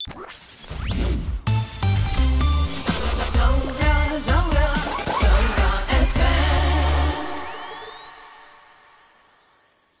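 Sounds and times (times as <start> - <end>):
radio jingle music: 0.0 - 10.0.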